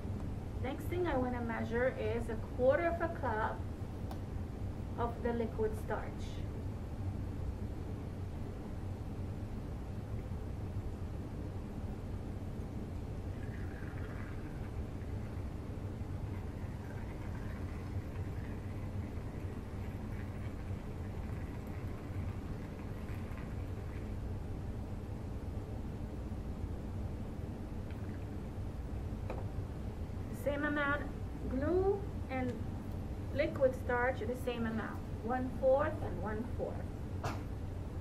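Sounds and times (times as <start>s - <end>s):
low room hum: 0.0s - 38.0s.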